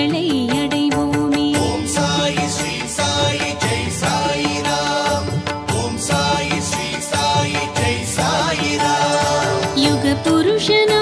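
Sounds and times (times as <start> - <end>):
devotional instrumental music: 0.0 - 11.0
steady percussion beat: 1.6 - 11.0.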